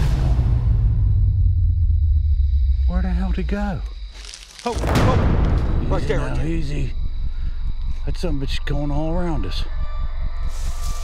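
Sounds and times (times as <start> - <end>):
deep low rumble drone: 0.0 - 4.1
man speaking: 5.8 - 7.0.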